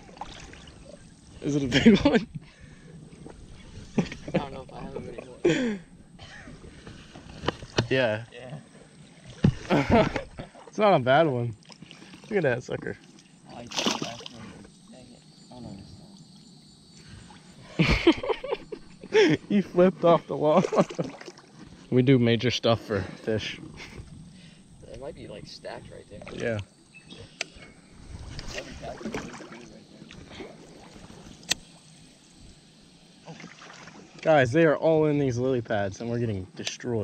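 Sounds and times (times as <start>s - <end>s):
water splash: 0.0s - 0.9s, 13.6s - 14.5s, 20.5s - 21.6s, 28.1s - 31.8s, 33.2s - 34.3s
water sloshing from wading: 0.0s - 22.1s, 22.9s - 34.4s.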